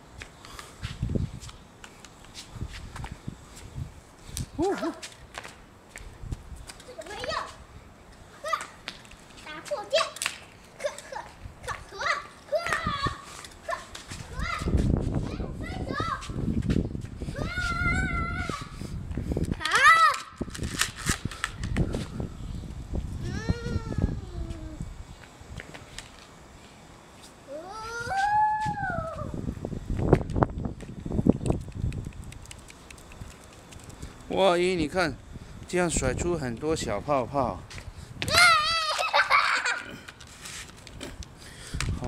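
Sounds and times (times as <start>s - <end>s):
children squealing and shrieking: 27.5s - 29.4s, 38.3s - 39.9s.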